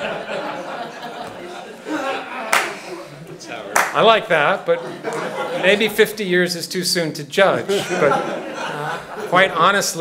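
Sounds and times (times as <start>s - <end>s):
audience laughing: 0.0s - 3.8s, 4.5s - 6.0s, 7.6s - 10.0s
scattered clapping: 2.5s - 2.8s, 3.7s - 4.1s
man speaking: 3.1s - 10.0s
sharp claps or knocks: 3.7s - 4.1s.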